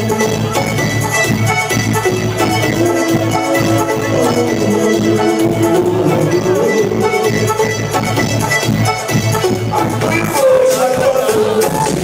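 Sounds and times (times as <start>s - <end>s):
bass line: 1.8s - 8.9s
long held note: 2.4s - 7.9s.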